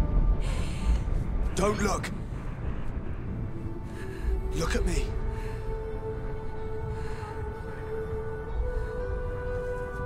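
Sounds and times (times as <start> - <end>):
dramatic film score: 0.0 - 10.0.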